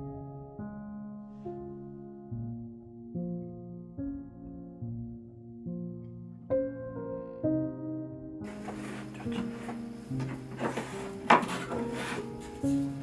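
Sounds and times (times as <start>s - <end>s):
plucked-string background music: 8.4s - 13.0s
wooden tray knocking and rubbing: 8.5s - 13.0s.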